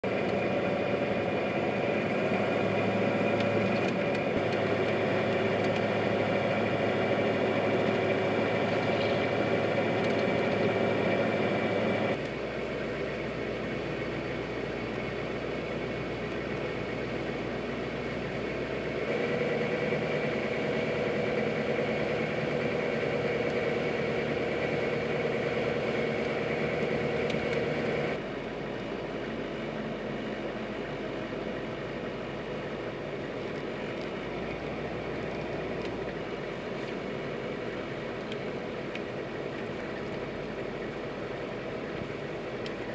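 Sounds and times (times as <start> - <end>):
diesel truck engine running: 0.0 - 42.9.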